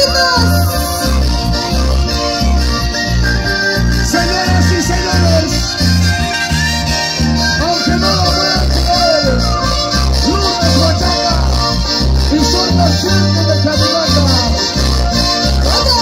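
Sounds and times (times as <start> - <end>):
horn section playing melody: 0.0 - 16.0
pulsing bass beat: 0.0 - 16.0.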